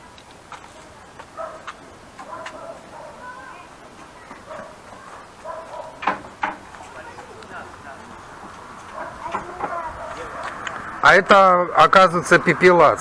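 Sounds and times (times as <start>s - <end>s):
distant indistinct voices: 0.0s - 13.0s.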